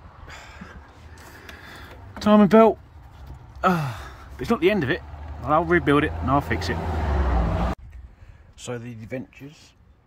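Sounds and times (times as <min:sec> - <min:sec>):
faint breath: 0:00.2 - 0:02.0, 0:08.0 - 0:08.6.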